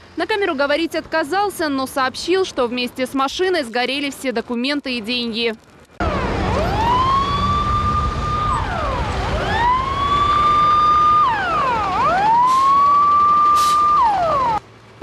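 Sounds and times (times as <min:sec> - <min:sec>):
fire engine siren wailing: 0:06.0 - 0:14.6
second siren: 0:06.0 - 0:14.6.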